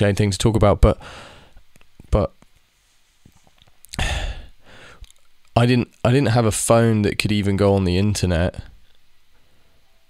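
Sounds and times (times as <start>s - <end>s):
man sighing: 3.9s - 5.0s.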